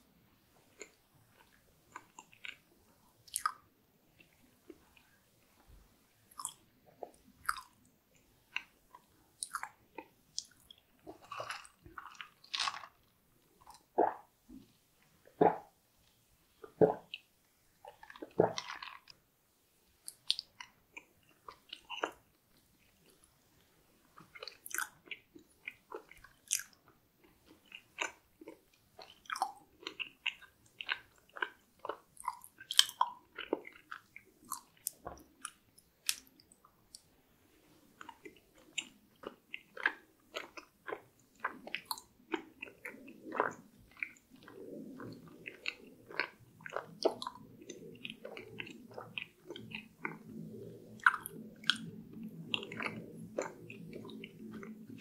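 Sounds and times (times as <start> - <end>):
wet mouth clicks: 3.3 - 3.6, 9.4 - 12.4, 15.4 - 15.7, 16.6 - 17.3, 20.0 - 22.2, 28.0 - 37.1, 38.0 - 55.0
biting and chewing: 8.5 - 14.3, 17.9 - 19.2, 24.2 - 36.4, 38.0 - 55.0.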